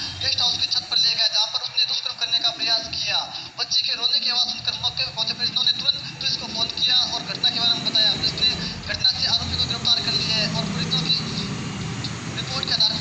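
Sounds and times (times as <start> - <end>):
news reader speaking on television: 0.0 - 13.0.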